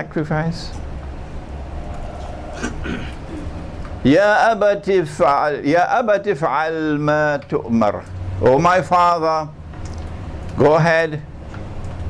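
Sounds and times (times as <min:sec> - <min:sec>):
room noise hum: 0:00.0 - 0:12.0.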